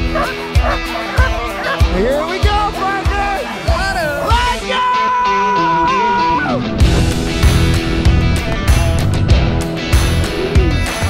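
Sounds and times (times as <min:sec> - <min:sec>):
sled dogs barking and yipping: 0:00.0 - 0:04.4
background music with kick drum beat: 0:00.0 - 0:04.8.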